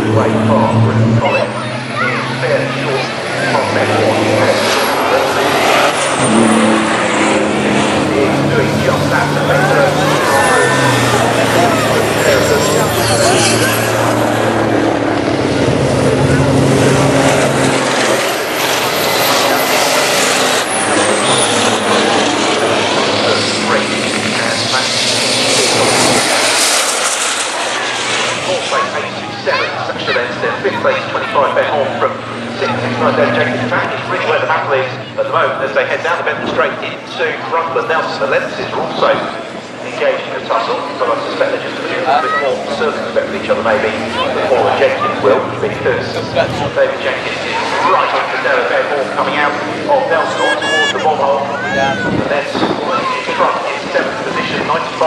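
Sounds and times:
racing truck diesel engines: 0.0 - 55.0
high whistle: 50.4 - 51.0.

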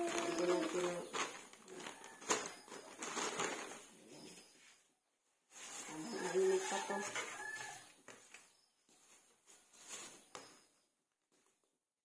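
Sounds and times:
rooster crowing: 6.1 - 7.9.

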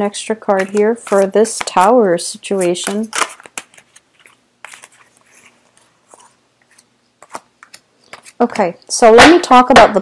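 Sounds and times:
soft rustles: 2.5 - 8.4.

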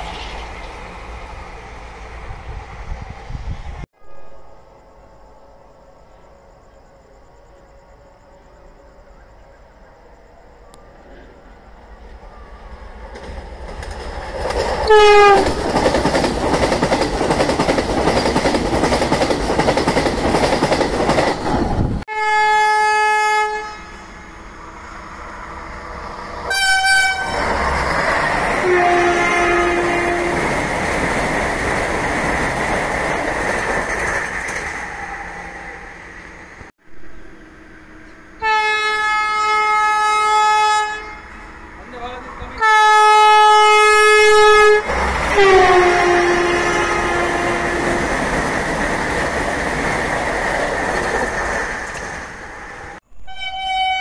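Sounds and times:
train rushing past: 0.0 - 54.0
train horn blasts: 14.8 - 15.5, 22.1 - 25.1, 26.5 - 27.7, 28.5 - 30.6, 37.2 - 41.6, 42.5 - 48.1, 53.2 - 54.0.

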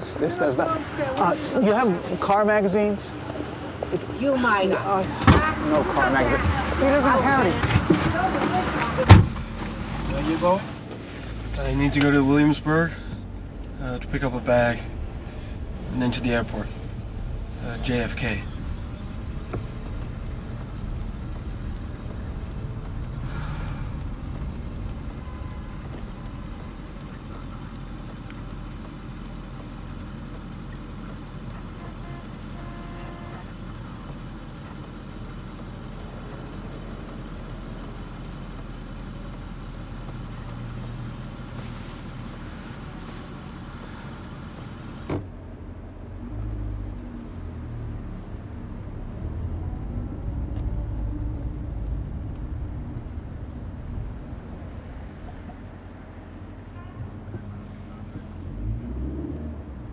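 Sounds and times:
car engine and road noise: 0.0 - 59.9
low rumble of traffic: 0.0 - 59.9
light regular ticking: 11.6 - 45.2.

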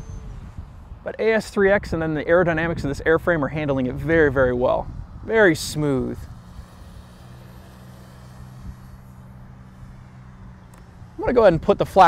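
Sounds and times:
electric motor and propeller hum: 0.0 - 12.0
wind rumbling on microphone: 0.0 - 12.0.

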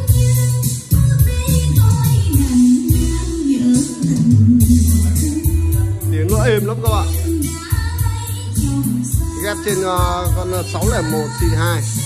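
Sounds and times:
deep bass line: 0.0 - 12.0
music over loudspeakers: 0.0 - 12.0.

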